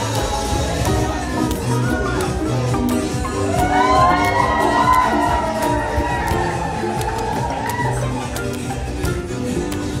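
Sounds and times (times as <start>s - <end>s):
crowd cheering and shouting: 0.0s - 9.6s
music with steady beat: 0.0s - 10.0s.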